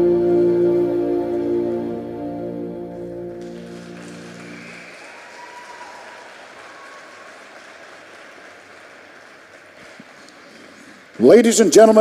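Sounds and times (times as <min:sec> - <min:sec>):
held music chord: 0:00.0 - 0:04.6
audience applause: 0:03.3 - 0:12.0.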